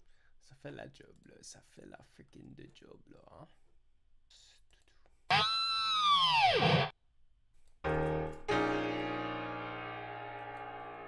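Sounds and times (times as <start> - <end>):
distorted guitar scream sliding down: 5.3 - 6.9
sustained keyboard chord: 7.9 - 11.0.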